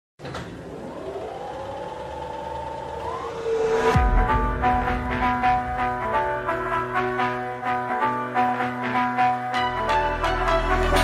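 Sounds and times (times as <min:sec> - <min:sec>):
synth sweep rising in pitch: 0:00.6 - 0:08.4
electronic music: 0:00.7 - 0:11.0
deep downward boom: 0:02.5 - 0:07.2.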